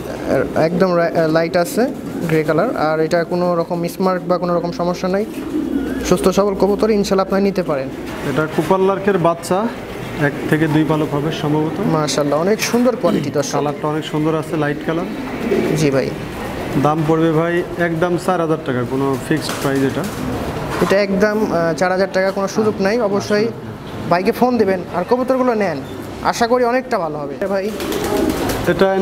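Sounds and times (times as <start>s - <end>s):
pigeon cooing: 0.0s - 21.7s, 27.4s - 29.0s
man's voice: 10.2s - 15.1s.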